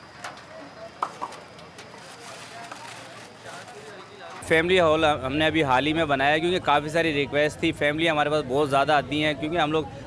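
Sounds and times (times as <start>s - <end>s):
plastic bag crinkling: 1.0s - 4.4s.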